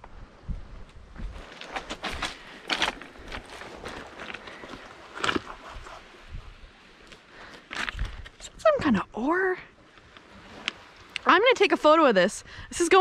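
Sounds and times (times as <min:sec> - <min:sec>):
footsteps on pebbles: 0:01.2 - 0:05.7.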